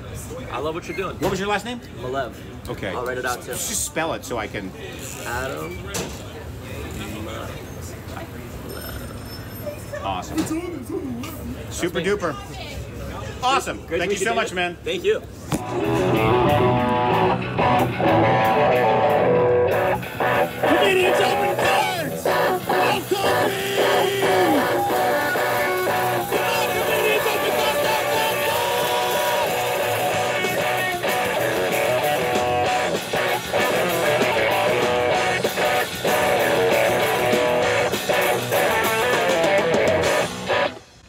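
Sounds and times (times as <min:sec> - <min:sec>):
rock band playing live: 0:15.6 - 0:40.9.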